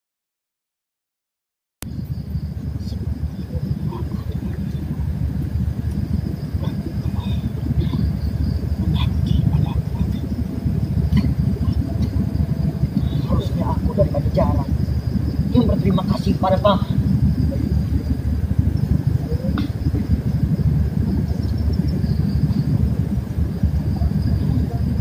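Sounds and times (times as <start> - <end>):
loud unsteady low rumble: 1.8 - 25.0
faint distant voices: 2.1 - 25.0.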